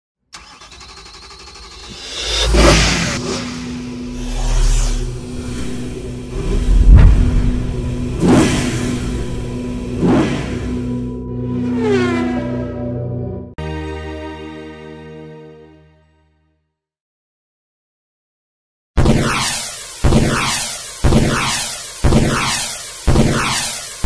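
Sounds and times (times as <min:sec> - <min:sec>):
car engine revs: 0:00.4 - 0:11.0
low drone: 0:01.6 - 0:11.9
falling tone: 0:01.9 - 0:09.8
passing sweeps: 0:01.9 - 0:11.0
sharp hit: 0:02.0 - 0:11.0.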